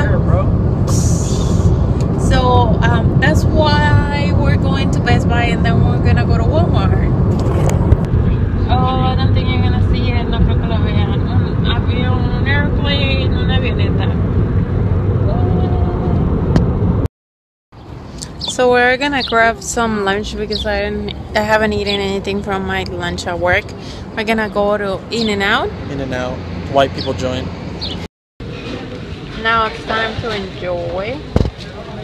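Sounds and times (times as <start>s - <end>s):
voices: 0.0s - 7.1s, 8.2s - 14.2s, 15.2s - 16.3s, 18.2s - 27.5s, 28.6s - 32.0s
car road and engine rumble: 0.0s - 17.1s, 17.7s - 32.0s.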